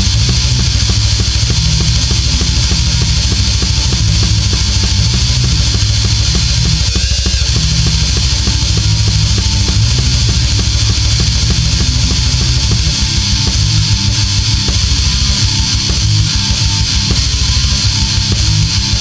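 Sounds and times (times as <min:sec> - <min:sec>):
heavy metal guitars and drums: 0:00.0 - 0:19.0.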